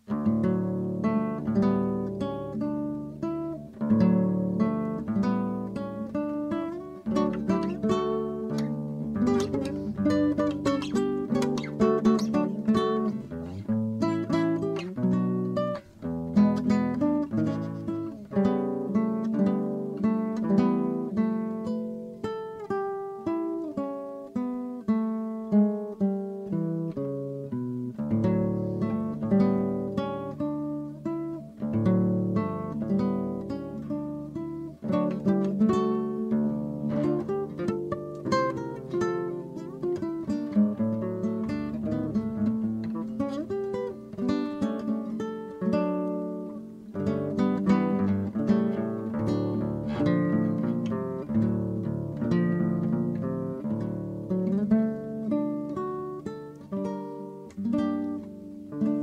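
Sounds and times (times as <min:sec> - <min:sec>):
acoustic guitar music: 0:00.0 - 0:59.0.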